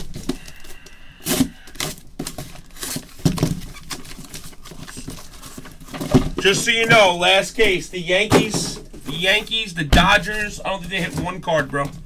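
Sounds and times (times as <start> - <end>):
cardboard scraping and tearing: 1.2 - 7.1.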